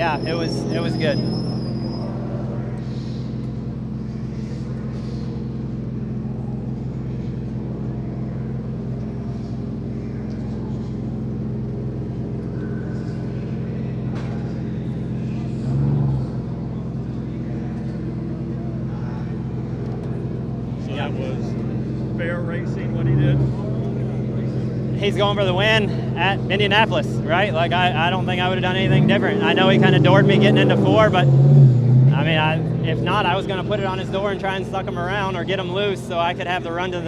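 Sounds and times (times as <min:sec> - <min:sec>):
low mechanical hum: 0:00.1 - 0:29.3.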